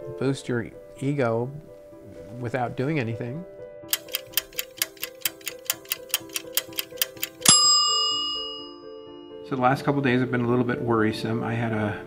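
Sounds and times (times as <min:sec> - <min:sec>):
fast even ticking: 0:03.9 - 0:07.6
bright bell-like ding: 0:07.4 - 0:09.5.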